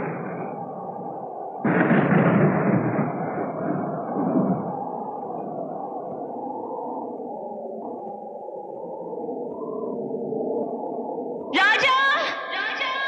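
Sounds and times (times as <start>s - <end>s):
low sustained film score tones: 0.0s - 13.0s.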